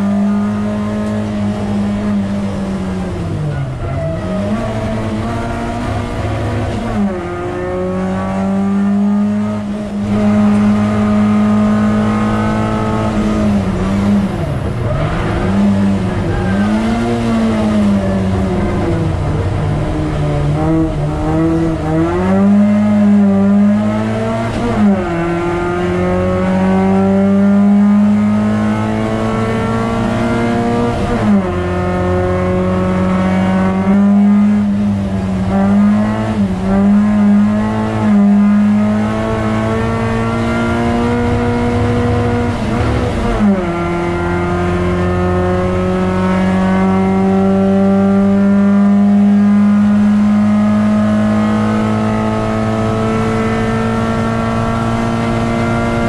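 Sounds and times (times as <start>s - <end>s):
race car engine under hard load: 0.0s - 56.0s.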